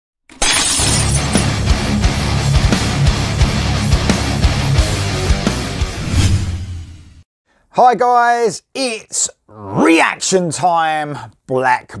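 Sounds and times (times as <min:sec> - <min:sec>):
glass shattering: 0:00.3 - 0:01.6
rock music with drum beat: 0:01.1 - 0:06.0.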